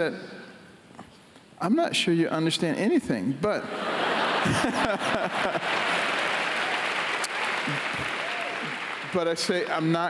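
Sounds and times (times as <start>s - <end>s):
audience applauding: 4.4s - 10.0s.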